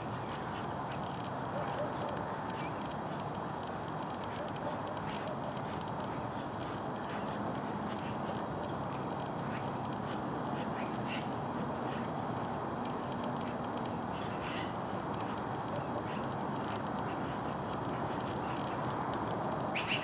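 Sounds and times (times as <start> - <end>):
outdoor hiss and rumble: 0.0 - 20.0.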